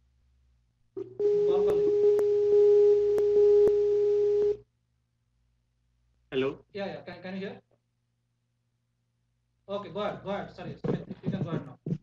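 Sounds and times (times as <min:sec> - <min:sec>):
outgoing call tone: 0:01.0 - 0:04.7.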